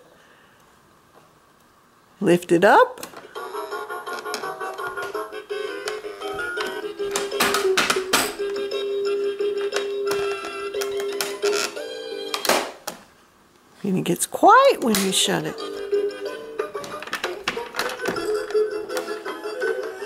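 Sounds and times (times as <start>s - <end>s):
toy playing synthesized tune: 3.3s - 7.1s, 8.4s - 12.4s, 15.5s - 20.0s.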